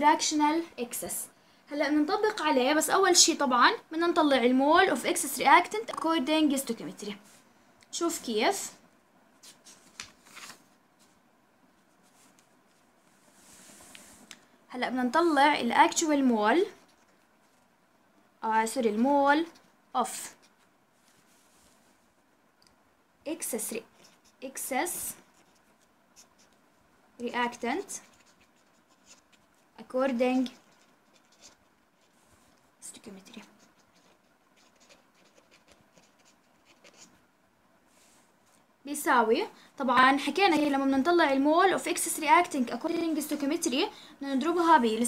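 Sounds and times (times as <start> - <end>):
paper rustling: 9.4 - 11.2
marker pen scratching on paper: 23.5 - 26.6, 27.2 - 37.2.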